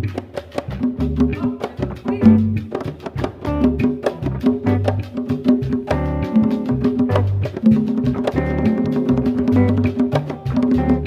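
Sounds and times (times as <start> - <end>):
congas: 0.0 - 11.0
latin band playing: 0.0 - 11.0
wood-block-like strokes: 0.0 - 11.0.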